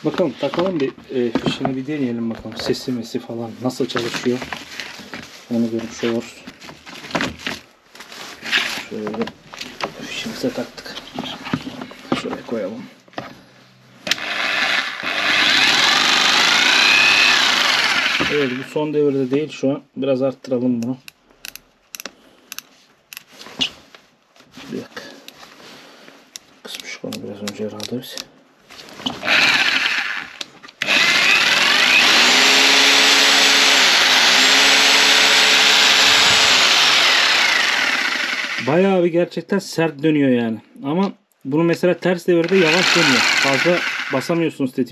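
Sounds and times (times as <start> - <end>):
drill motor whine: 14.1 - 18.7, 29.2 - 38.8, 42.4 - 44.3.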